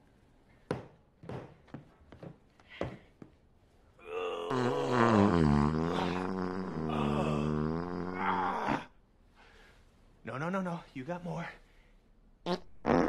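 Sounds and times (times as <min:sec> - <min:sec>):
long wavering fart: 0:04.2 - 0:08.9, 0:12.5 - 0:13.0.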